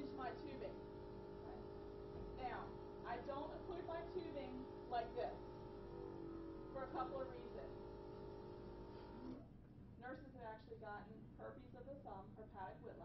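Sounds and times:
suction motor humming: 0.0s - 9.4s.

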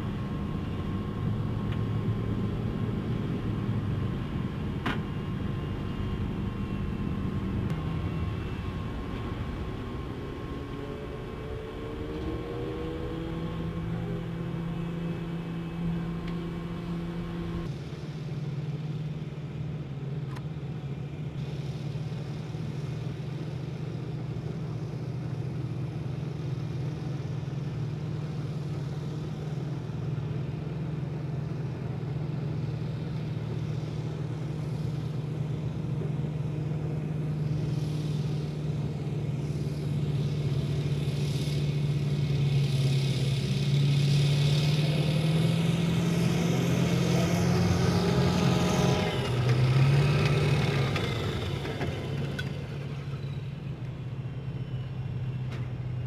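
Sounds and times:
rising whine: 0.0s - 18.1s
diesel engine droning: 0.0s - 56.0s.

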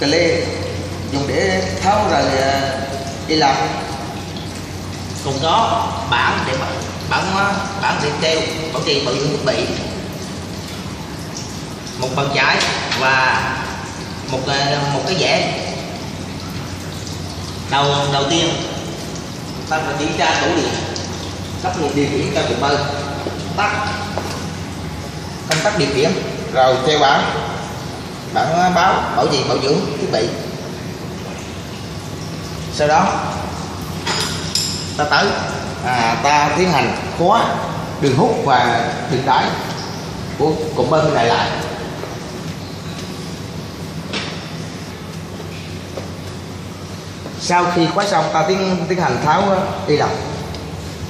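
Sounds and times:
low machinery hum: 0.0s - 51.0s.

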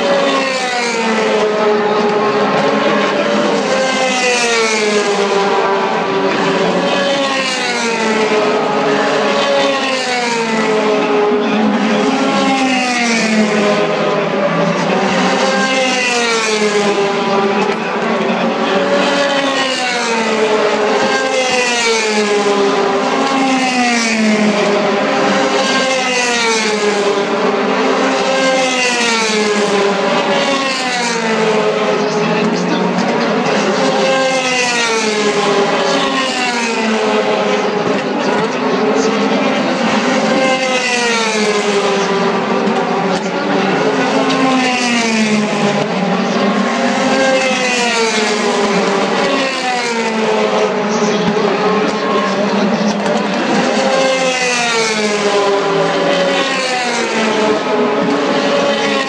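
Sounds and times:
racing car engines: 0.0s - 59.0s.

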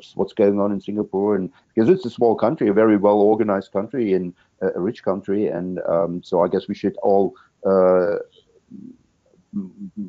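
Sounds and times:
man speaking hesitantly: 0.0s - 8.9s, 9.6s - 10.0s.

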